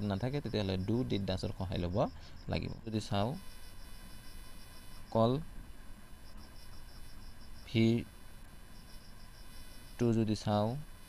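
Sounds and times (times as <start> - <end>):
person speaking: 0.0 - 3.4
faint high pulsed chirping: 0.0 - 11.0.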